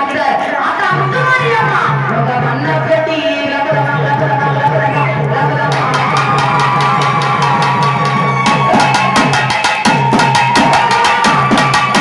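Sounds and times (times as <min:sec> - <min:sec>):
barrel drum beating: 0:04.0 - 0:12.0.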